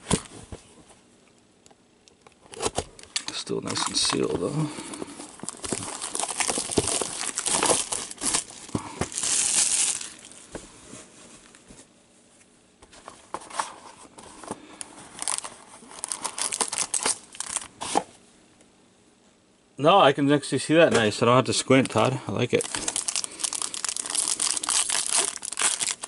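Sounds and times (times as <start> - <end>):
foil card pack crinkling: 2.5 - 10.4, 14.8 - 18.0, 21.7 - 26.0
plastic shrink wrap crinkling: 2.5 - 10.5, 15.1 - 18.0, 21.7 - 26.0.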